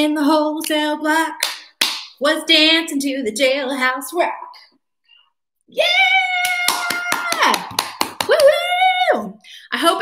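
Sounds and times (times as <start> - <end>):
hand claps: 1.4 - 2.1, 6.4 - 8.6
woman shouting: 5.7 - 7.7.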